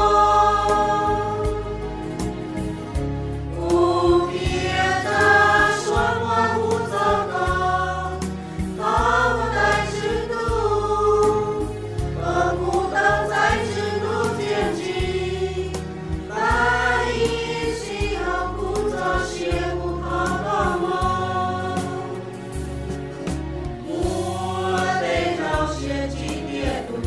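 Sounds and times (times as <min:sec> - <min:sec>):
choir singing: 0:00.0 - 0:01.8, 0:03.5 - 0:22.3, 0:23.8 - 0:27.0
instrumental backing with bass: 0:00.0 - 0:27.0.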